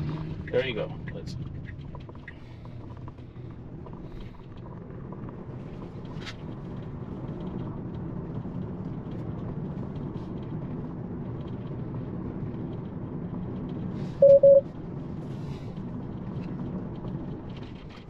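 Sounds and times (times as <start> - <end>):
tyre and road noise in car cabin: 0.0 - 18.0.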